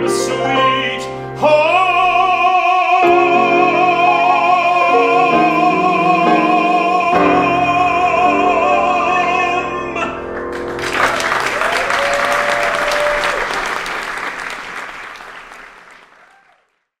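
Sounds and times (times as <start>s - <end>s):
man singing with vibrato: 0.0s - 10.4s
piano accompaniment: 0.0s - 16.0s
audience applauding: 10.5s - 16.9s
long held cheer: 10.7s - 16.8s.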